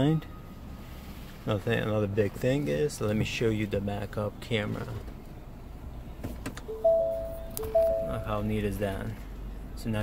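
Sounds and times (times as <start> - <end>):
dashboard chime: 6.7 - 8.4.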